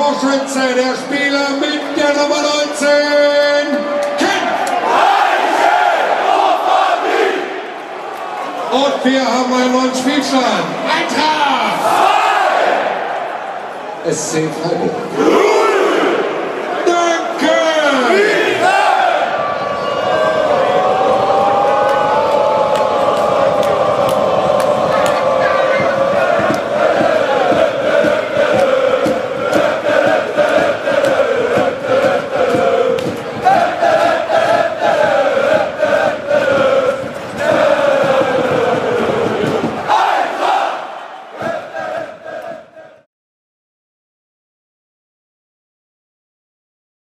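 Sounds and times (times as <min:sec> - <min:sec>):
football crowd singing a chant: 0:03.7 - 0:07.8, 0:11.7 - 0:13.7, 0:15.1 - 0:16.8, 0:17.9 - 0:19.5, 0:20.2 - 0:43.1
rhythmic hand clapping: 0:21.8 - 0:42.9.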